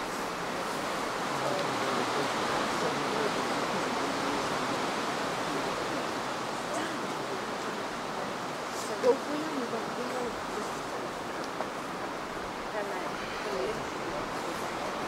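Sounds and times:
faint distant voices: 0.0s - 15.0s
steady rushing noise: 0.0s - 15.0s.

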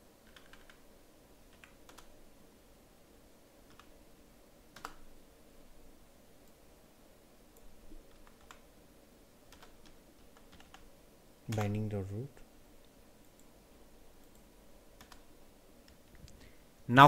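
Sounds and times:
computer keyboard typing: 0.2s - 0.8s, 1.5s - 2.1s, 3.7s - 3.9s, 4.7s - 5.0s, 7.6s - 8.6s, 9.5s - 10.9s, 11.5s - 11.9s, 15.0s - 15.3s.

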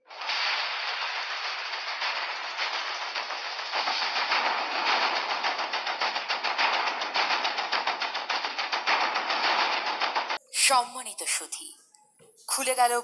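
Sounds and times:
audience applauding: 0.3s - 10.4s.

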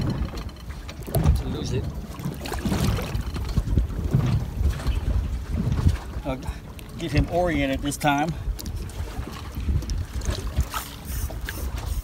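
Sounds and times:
water slapping boat hull: 0.0s - 12.0s
wind rumbling on microphone: 0.0s - 12.0s.

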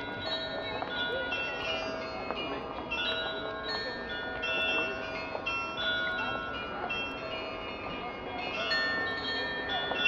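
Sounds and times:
carillon bells playing melody: 0.0s - 10.0s.

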